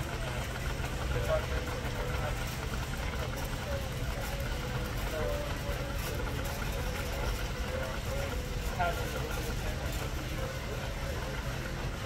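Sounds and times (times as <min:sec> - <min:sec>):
faint voices: 0:00.0 - 0:12.0
low store hum: 0:00.0 - 0:12.0.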